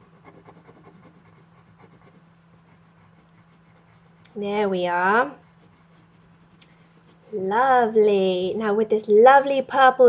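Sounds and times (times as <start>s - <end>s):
pencil scratching on paper: 0.0s - 7.6s.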